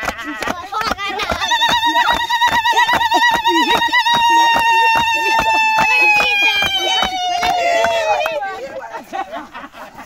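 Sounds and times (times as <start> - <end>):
hand claps keeping a beat: 0.0 - 8.5.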